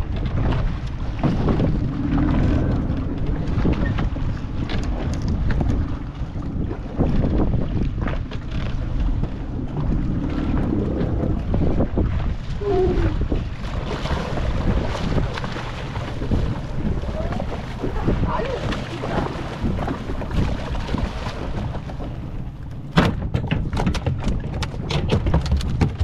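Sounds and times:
low steady rumble: 0.0s - 24.9s
water washing against wooden boat: 0.0s - 26.0s
wind blowing across microphone: 0.0s - 26.0s.

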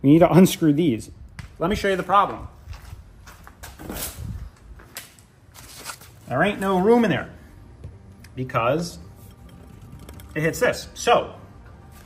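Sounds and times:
footsteps on concrete: 1.3s - 7.0s.

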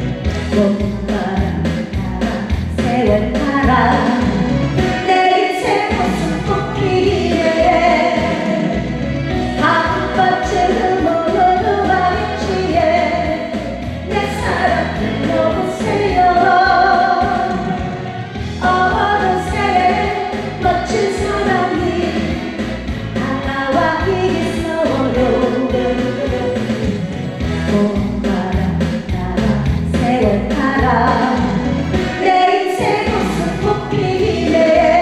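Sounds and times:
recorded backing band: 0.0s - 35.0s
woman singing into a microphone: 0.5s - 8.8s, 9.6s - 18.0s, 18.6s - 22.5s, 23.1s - 35.0s.

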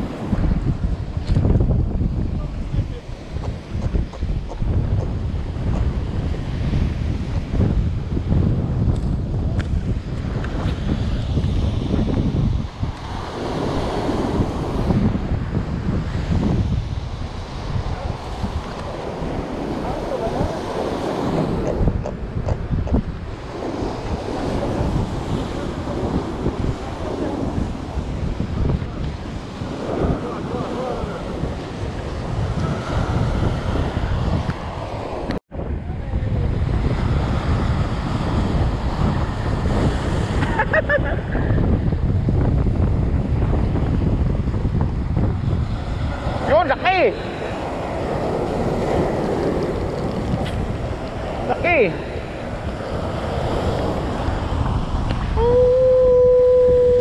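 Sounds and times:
wind buffeting microphone: 0.0s - 57.0s
surf breaking over rocks: 36.3s - 57.0s.

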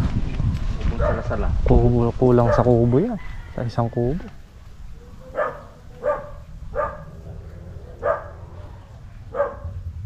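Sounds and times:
dog barking: 1.0s - 1.4s, 2.4s - 2.8s, 5.0s - 7.2s, 7.8s - 8.7s, 9.3s - 9.8s.

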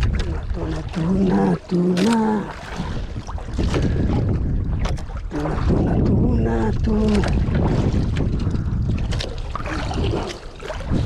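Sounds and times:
wind buffeting microphone: 0.0s - 1.8s, 2.4s - 11.0s
man calling out: 0.6s - 2.6s.

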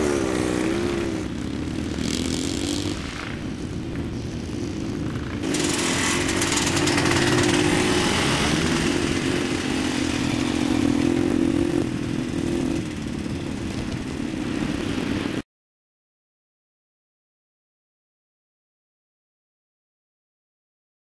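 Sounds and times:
motorcycle engine running under load: 0.0s - 15.4s.

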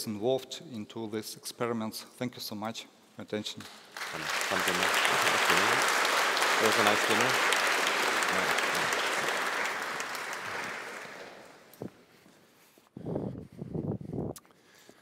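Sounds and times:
audience applauding: 3.7s - 11.8s.

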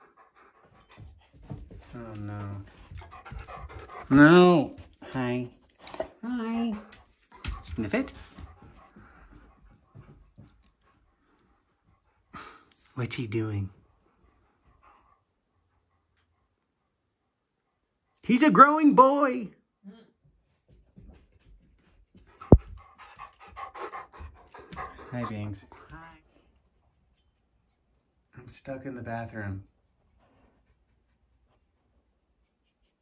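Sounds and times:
dog panting: 0.0s - 18.1s, 21.0s - 26.6s
dogs sniffing: 22.3s - 26.0s.

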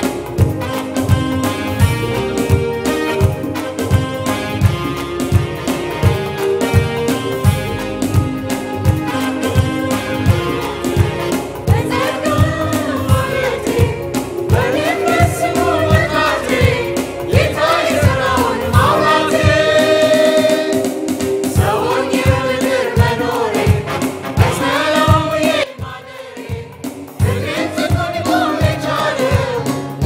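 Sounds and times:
choir singing gospel song: 0.0s - 4.8s, 5.6s - 30.0s
steady drum beat: 0.0s - 30.0s.

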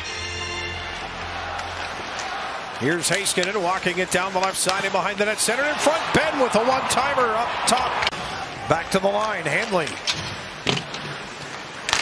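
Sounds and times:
arena crowd: 0.0s - 10.0s
hockey sticks and puck cracking: 0.9s - 12.0s.

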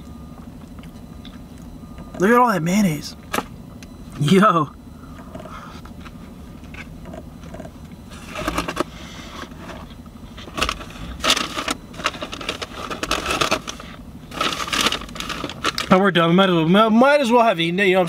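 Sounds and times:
low hum in car cabin: 0.0s - 18.0s
food packaging crinkling: 10.4s - 15.9s.

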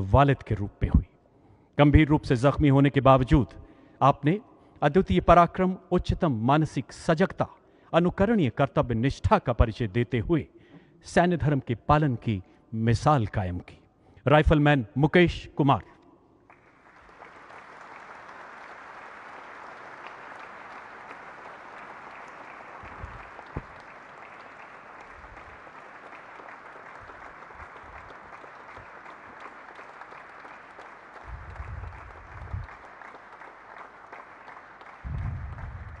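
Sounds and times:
audience applauding: 16.5s - 36.0s.

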